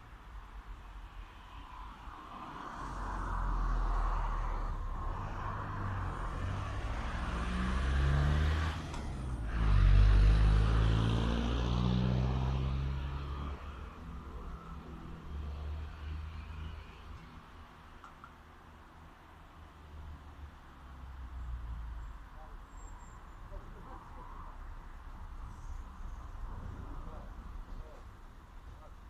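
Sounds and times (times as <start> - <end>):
vehicle driving past: 2.4 - 17.4.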